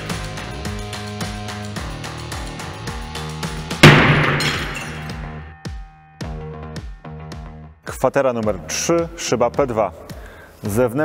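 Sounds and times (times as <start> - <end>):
background music: 0.0 - 11.0
brick smashing glass: 3.8 - 5.2
glass cracking and ringing: 3.8 - 5.2.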